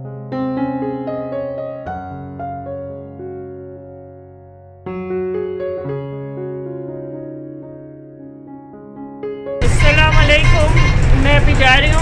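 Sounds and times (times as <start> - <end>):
bus engine rumble: 9.6 - 12.0
road noise: 9.6 - 12.0.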